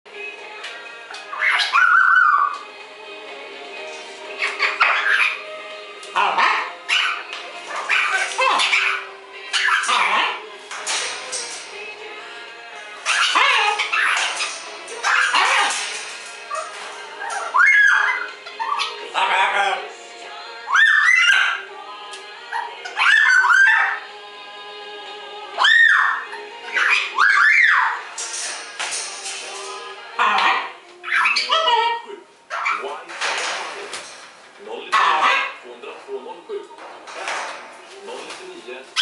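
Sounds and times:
parrots calling: 0:01.0 - 0:02.7, 0:04.2 - 0:24.1, 0:25.5 - 0:35.6
soft macaw vocal sounds: 0:01.1 - 0:02.7, 0:04.0 - 0:24.1, 0:25.5 - 0:34.3, 0:34.9 - 0:35.6
harsh parrot call: 0:01.3 - 0:02.6, 0:16.5 - 0:19.9, 0:20.7 - 0:21.7, 0:25.6 - 0:28.0, 0:30.2 - 0:32.9.

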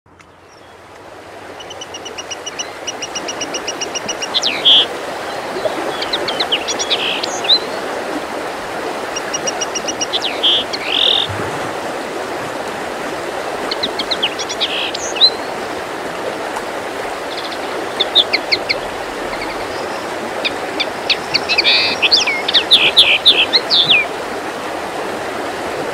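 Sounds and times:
songbird singing: 0:00.1 - 0:07.8, 0:09.1 - 0:11.9, 0:13.6 - 0:15.6, 0:17.2 - 0:24.1.

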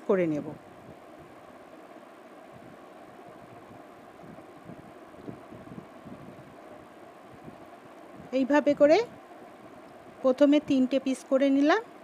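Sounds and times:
low background hiss: 0:00.0 - 0:12.0.

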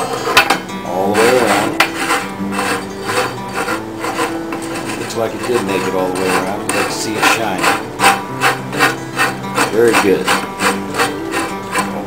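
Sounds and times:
wooden skewer scraping tin can: 0:00.0 - 0:12.0.

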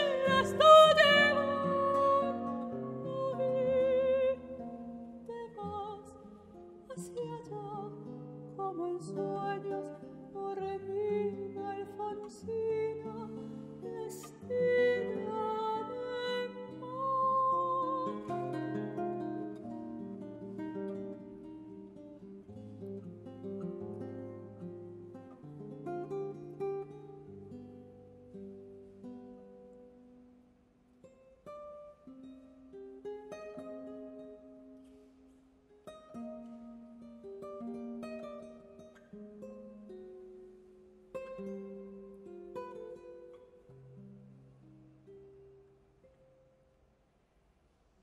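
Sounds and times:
classical guitar arpeggios: 0:00.0 - 0:48.0.

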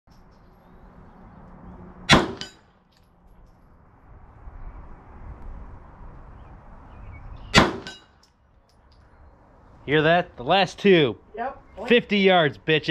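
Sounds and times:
gunshots: 0:02.1 - 0:02.6, 0:07.6 - 0:08.0
bullet pinging steel target: 0:02.1 - 0:03.1, 0:07.5 - 0:08.3.

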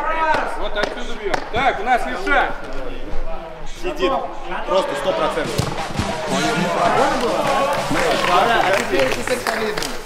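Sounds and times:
men talking and calling out: 0:00.0 - 0:09.9.

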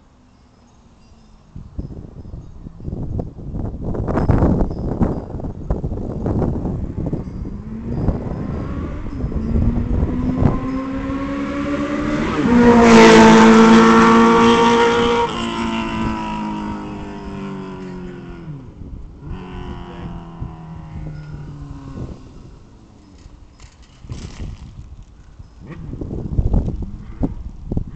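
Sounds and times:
vehicle engine passing: 0:06.5 - 0:23.4.

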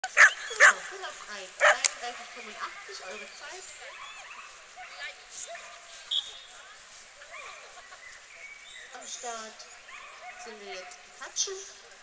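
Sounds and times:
dogs yipping and barking: 0:00.0 - 0:00.9, 0:09.8 - 0:11.0
distant chatter of voices: 0:00.0 - 0:12.0.

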